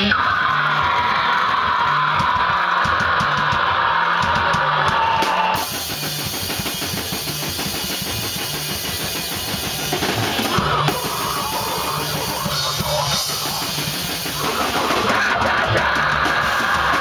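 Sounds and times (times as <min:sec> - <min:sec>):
distorted guitar riff: 0:00.0 - 0:17.0
drums: 0:00.0 - 0:17.0.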